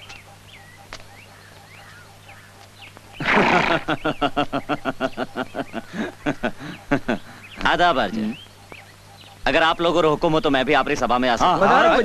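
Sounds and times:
faint bird chirps: 0.0s - 11.3s
low steady hum: 0.0s - 12.0s
horse whinnying: 3.2s - 3.9s.

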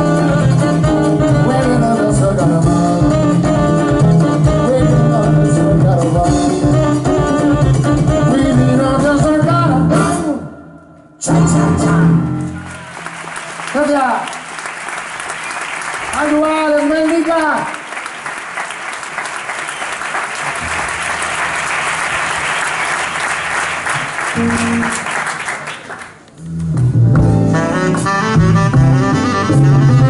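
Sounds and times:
audience clapping: 12.4s - 27.0s.

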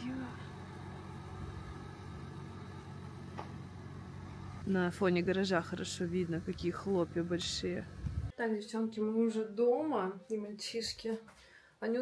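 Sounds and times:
car engine idling: 0.0s - 8.3s.

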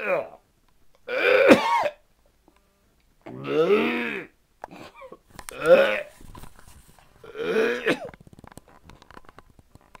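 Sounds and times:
man coughing: 1.4s - 2.0s, 7.4s - 8.2s.

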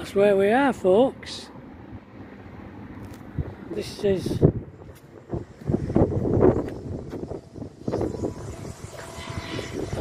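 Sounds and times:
wind gusting over microphone: 0.0s - 10.0s.

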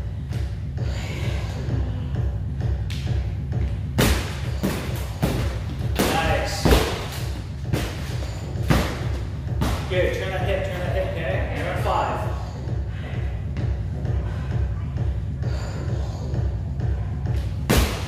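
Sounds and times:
background music with low beat: 0.0s - 18.0s
gloved punches on heavy bag: 4.0s - 9.9s, 17.7s - 18.0s.

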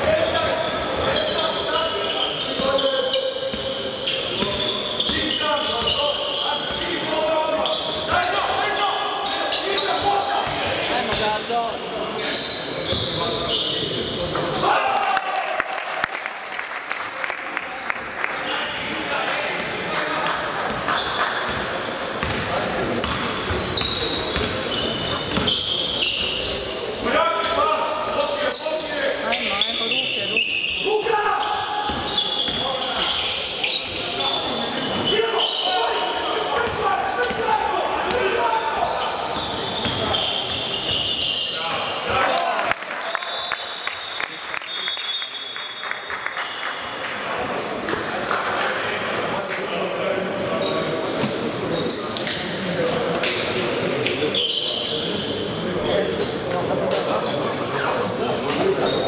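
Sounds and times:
basketball bouncing on wooden court: 22.2s - 24.6s.

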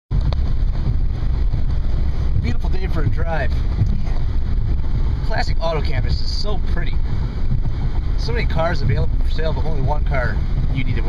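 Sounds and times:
road and engine rumble in car: 0.1s - 11.0s.

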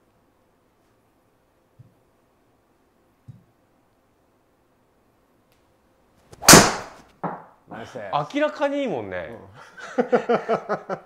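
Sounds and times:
golf club striking ball: 6.4s - 7.4s.

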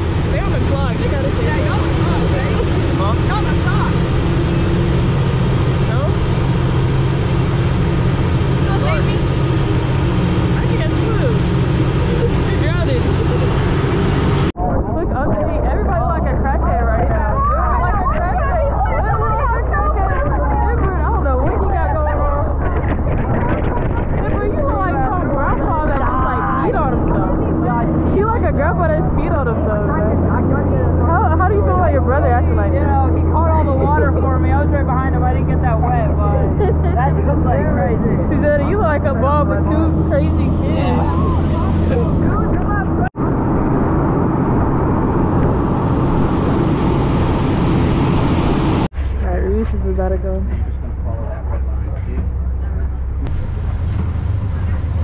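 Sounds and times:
voices talking: 0.0s - 43.2s, 49.2s - 53.3s
rushing wake: 0.0s - 49.6s
boat engine drone: 0.0s - 55.0s
wind: 0.0s - 55.0s.

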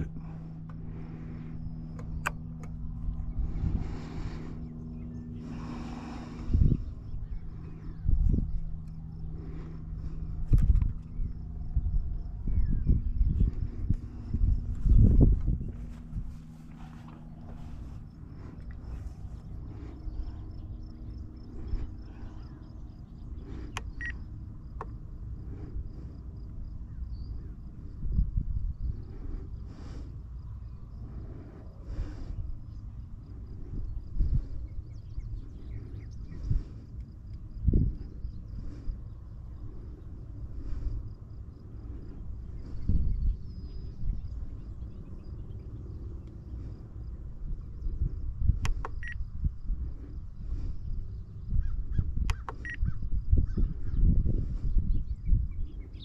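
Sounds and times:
wind on microphone: 0.0s - 24.1s, 26.6s - 56.0s.

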